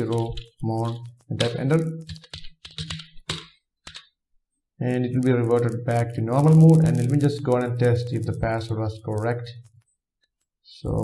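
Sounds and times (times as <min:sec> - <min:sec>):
keyboard keystrokes: 0:00.0 - 0:04.1.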